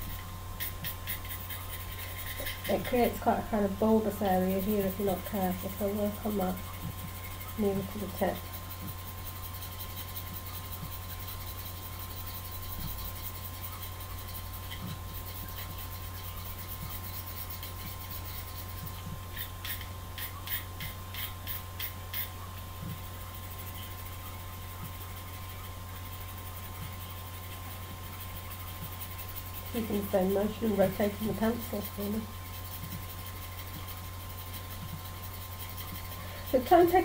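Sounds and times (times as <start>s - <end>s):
knife blade scraping pencil lead: 0.0s - 22.3s, 23.5s - 37.0s.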